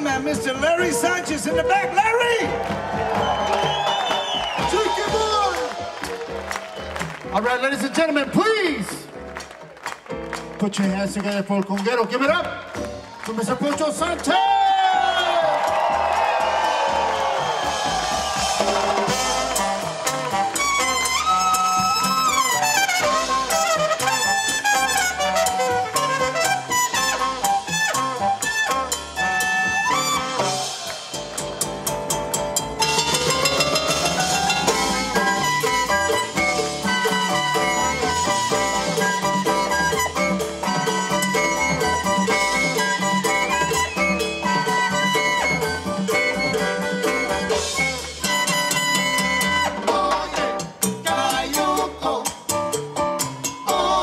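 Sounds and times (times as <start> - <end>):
congas: 0.0 - 8.4, 14.9 - 54.0
latin jazz band playing: 0.0 - 54.0
horn lines: 17.6 - 50.6.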